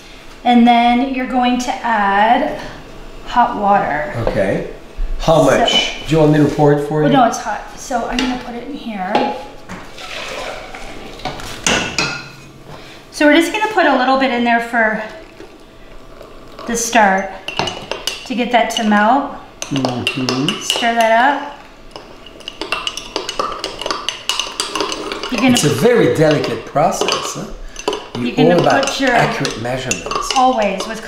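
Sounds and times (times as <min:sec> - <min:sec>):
pitcher clink: 0:22.4 - 0:31.0.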